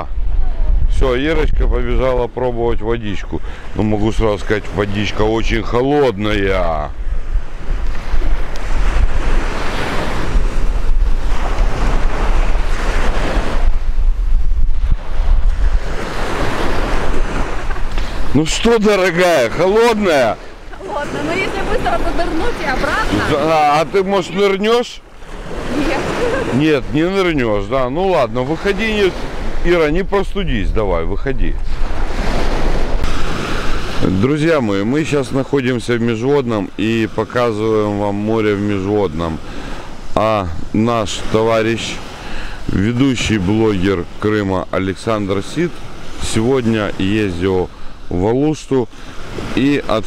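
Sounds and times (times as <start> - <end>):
wind buffeting microphone: 0.0 - 44.2
sea waves breaking on shore: 0.0 - 50.0.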